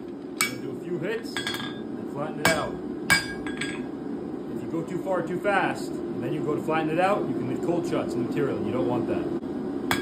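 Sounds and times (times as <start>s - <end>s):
hammer striking metal tool clang: 2.5s - 3.8s.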